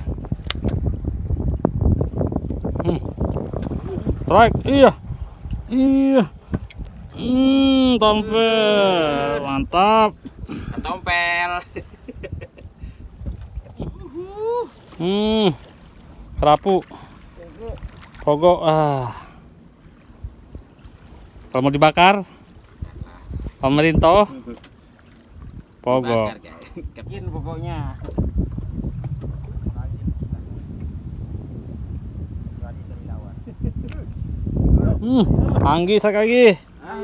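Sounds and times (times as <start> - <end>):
wind buffeting microphone: 0.0 - 18.6, 20.0 - 24.6, 25.2 - 37.0
water moving against boat: 0.0 - 37.0
person calling out: 13.8 - 15.6.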